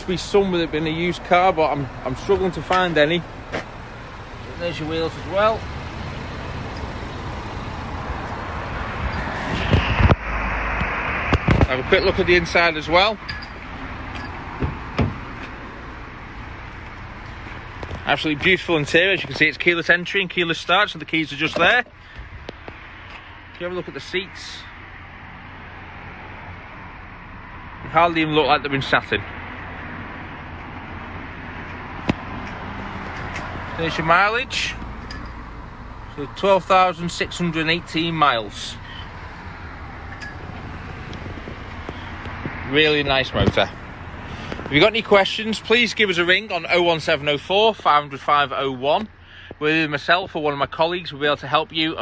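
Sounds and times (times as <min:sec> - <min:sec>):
outdoor background noise: 0:00.0 - 0:52.0.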